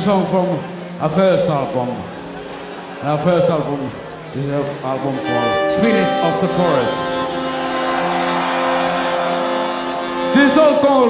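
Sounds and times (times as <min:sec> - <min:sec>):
faint crowd noise: 0:00.0 - 0:11.0.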